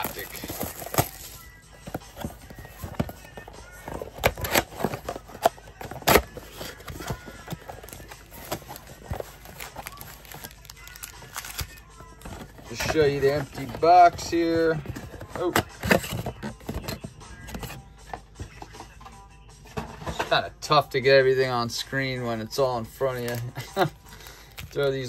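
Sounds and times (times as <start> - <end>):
cardboard and foil packs handled: 0.0 - 17.8, 22.5 - 25.0.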